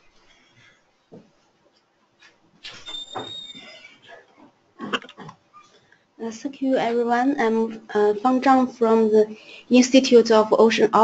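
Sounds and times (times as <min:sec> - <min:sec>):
high whistle: 0:02.7 - 0:03.8.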